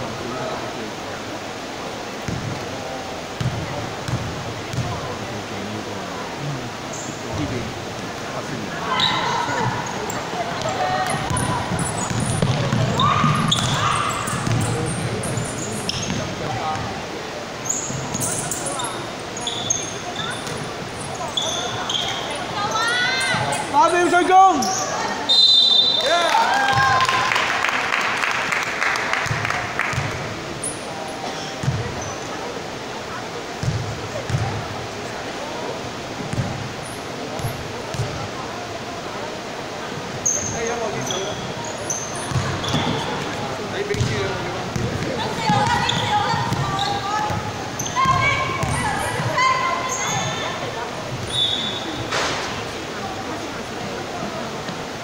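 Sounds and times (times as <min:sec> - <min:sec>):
players' voices in a hall: 0:00.0 - 0:55.0
sneakers squeaking: 0:03.4 - 0:05.2, 0:06.9 - 0:07.5, 0:08.9 - 0:17.0, 0:17.6 - 0:26.0, 0:29.2 - 0:32.4, 0:33.6 - 0:34.7, 0:36.3 - 0:38.2, 0:40.2 - 0:52.6
basketball bouncing on wood: 0:12.1 - 0:12.9
short high whistle blast: 0:25.3 - 0:26.0.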